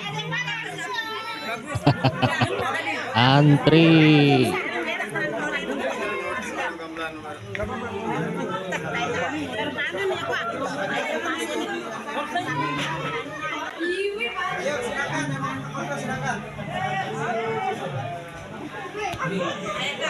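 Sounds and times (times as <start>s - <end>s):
crowd chattering: 0.0s - 20.0s.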